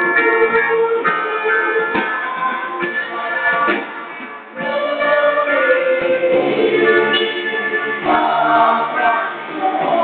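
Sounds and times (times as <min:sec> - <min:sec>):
group singing worship song: 0:04.6 - 0:10.0.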